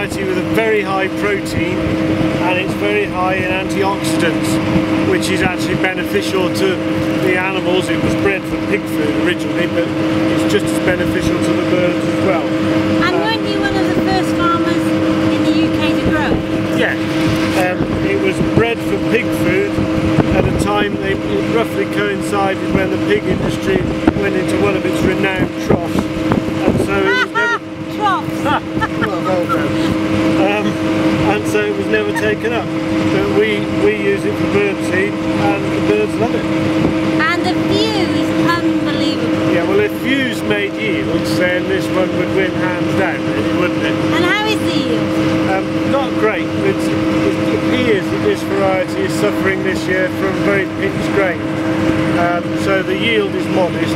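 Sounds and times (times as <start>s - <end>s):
wind buffeting microphone: 0.0s - 46.0s
droning hum: 0.0s - 53.9s.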